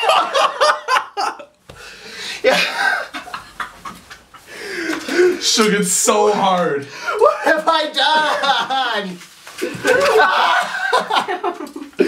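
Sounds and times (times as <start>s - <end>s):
man laughing: 0.0s - 1.5s, 2.4s - 5.4s, 7.1s - 12.0s
man gasping and panting: 1.7s - 3.0s, 4.4s - 5.4s.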